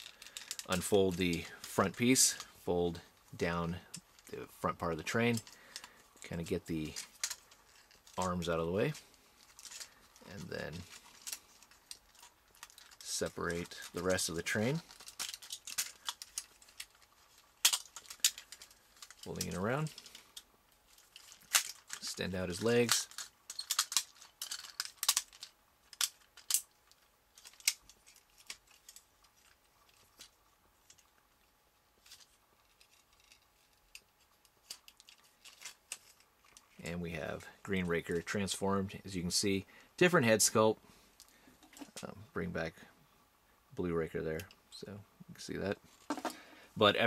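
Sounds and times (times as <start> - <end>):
plastic toy parts clicking: 6.9 - 8.3, 11.0 - 17.0, 17.6 - 31.0, 32.0 - 36.7.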